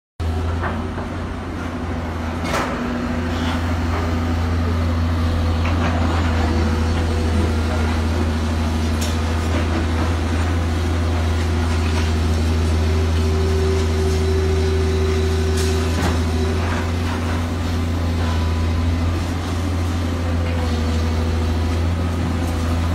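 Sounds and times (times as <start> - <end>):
diesel excavator engine running: 0.2 - 22.9.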